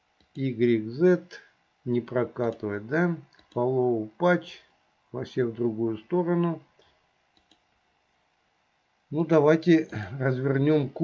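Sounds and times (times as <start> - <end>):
faint computer mouse clicks: 3.3 - 3.6, 7.3 - 7.7.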